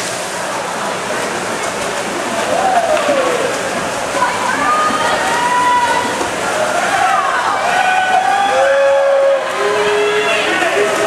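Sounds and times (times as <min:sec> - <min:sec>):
crowd noise: 0:00.0 - 0:11.0
splashing water: 0:00.0 - 0:11.0
people cheering with long shouts: 0:02.5 - 0:03.6, 0:04.6 - 0:11.0.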